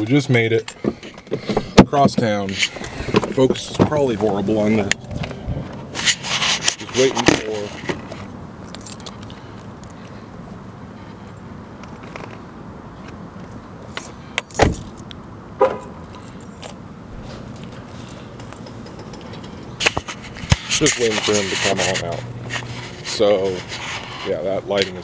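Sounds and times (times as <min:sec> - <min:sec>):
camera rubbing against clothing: 0:05.9 - 0:08.3, 0:19.8 - 0:25.0.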